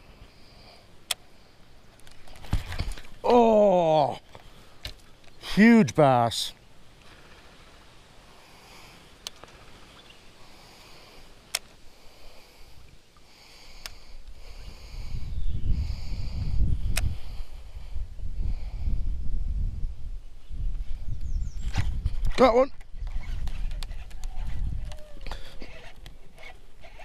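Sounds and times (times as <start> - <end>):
low rumbling buffeting microphone: 11.9 - 27.0
sharp clicks: 16.9 - 17.1
fishing reel being cranked: 25.2 - 27.0.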